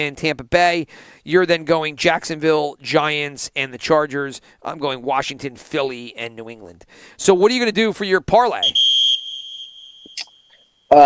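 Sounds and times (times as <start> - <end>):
high-pitched steady tone: 9.2 - 11.0.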